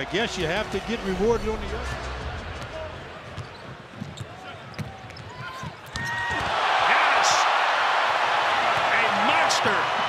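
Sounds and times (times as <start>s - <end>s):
sneakers squeaking: 3.1s - 6.4s.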